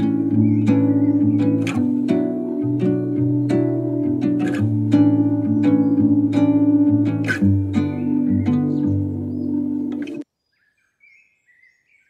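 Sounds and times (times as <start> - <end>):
acoustic guitar beat: 0.0 - 10.2
faint bird chirps: 0.0 - 12.0.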